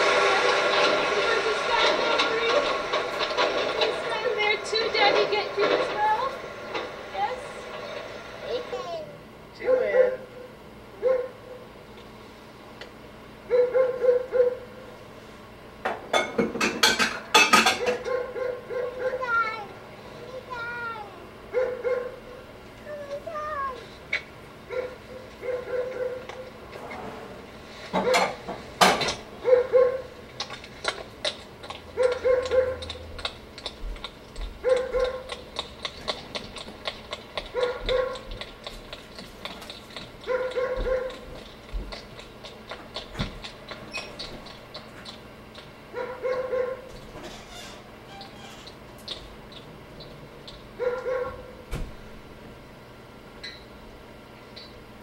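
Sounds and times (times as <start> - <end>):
dog barking: 9.6 - 11.7, 13.5 - 14.7, 17.8 - 19.4, 21.5 - 22.2, 24.7 - 26.5, 28.0 - 28.4, 29.4 - 30.1, 32.0 - 33.0, 34.6 - 35.4, 37.5 - 38.4, 40.2 - 41.3, 45.9 - 46.9, 50.8 - 51.6.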